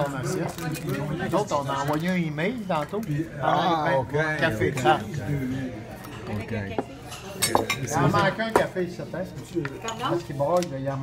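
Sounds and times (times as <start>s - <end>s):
cutlery and dishes clinking: 6.0s - 8.8s, 9.5s - 11.0s.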